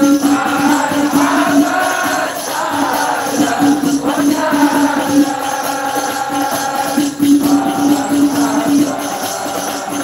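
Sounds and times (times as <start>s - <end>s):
hand drums: 0.0s - 10.0s
jingling percussion: 0.0s - 10.0s
men singing together: 0.0s - 10.0s.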